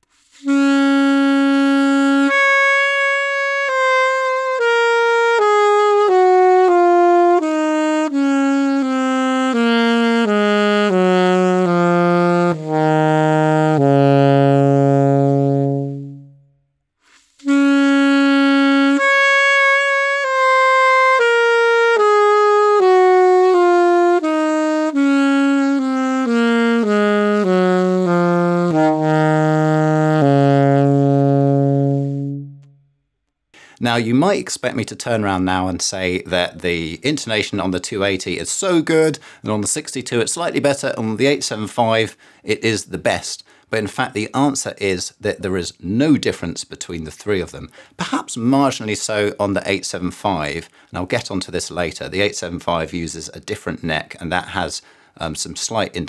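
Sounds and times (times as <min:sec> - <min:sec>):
alto saxophone solo: 0:00.3 - 0:32.9.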